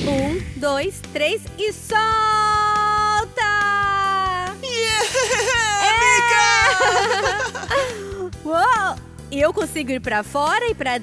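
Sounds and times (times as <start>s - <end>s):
background music with steady beat: 0.0s - 11.0s
voices exclaiming wordlessly: 3.4s - 7.7s.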